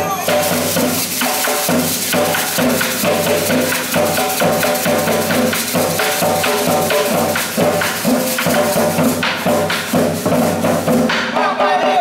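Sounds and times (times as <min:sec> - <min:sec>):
hand drums fast rhythm: 0:00.0 - 0:12.0.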